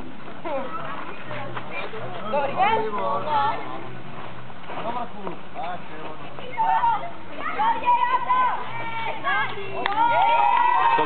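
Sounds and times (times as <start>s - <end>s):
children shouting: 6.6s - 11.0s
long held shout: 9.8s - 11.0s.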